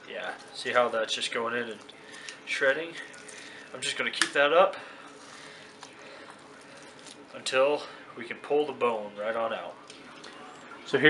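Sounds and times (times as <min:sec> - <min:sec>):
tongs scraping and squishing meat: 0:00.0 - 0:07.8.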